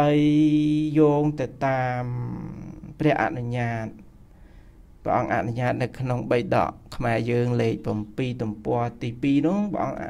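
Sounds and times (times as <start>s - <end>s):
man chanting on steady pitch: 0.0s - 4.1s, 5.0s - 10.0s.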